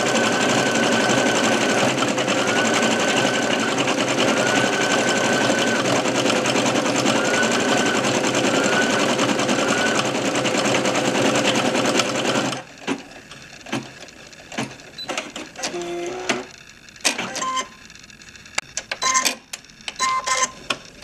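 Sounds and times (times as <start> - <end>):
embroidery machine stitching: 0.0 - 17.6.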